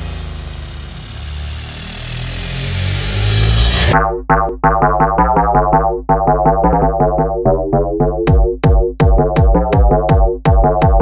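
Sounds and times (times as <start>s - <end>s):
low droning bass tones: 0.0s - 11.0s
noisy synthesized swell: 0.1s - 4.0s.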